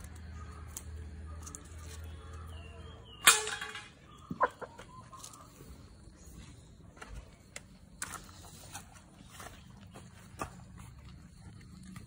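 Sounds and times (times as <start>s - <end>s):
metal plate clanging: 3.2s - 4.0s
hens clucking: 4.0s - 6.4s.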